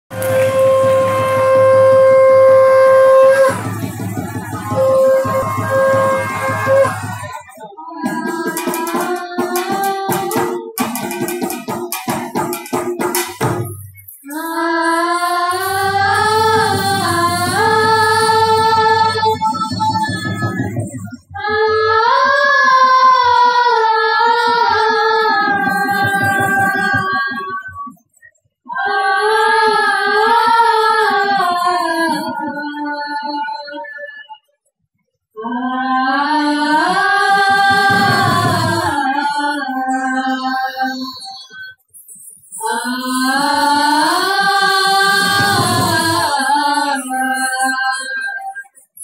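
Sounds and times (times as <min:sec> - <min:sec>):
low beat: 0:00.1 - 0:07.5, 0:15.5 - 0:21.4
reed wind instrument long note: 0:00.1 - 0:07.5, 0:15.2 - 0:20.8
high singing voice: 0:00.1 - 0:34.5, 0:35.4 - 0:49.0
quick steady percussion beat: 0:03.3 - 0:14.3, 0:25.5 - 0:27.5, 0:37.6 - 0:39.0, 0:45.0 - 0:46.4.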